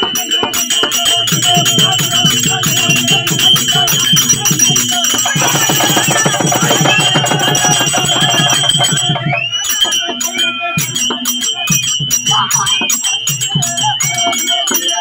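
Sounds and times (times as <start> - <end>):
drum beaten fast: 0.0 - 15.0
held high tone: 0.0 - 15.0
jingling: 0.6 - 10.3.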